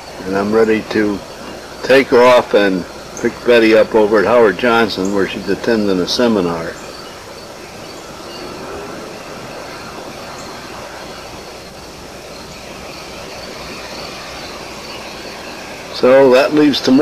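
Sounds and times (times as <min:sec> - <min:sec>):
outdoor background hiss: 0:00.0 - 0:17.0.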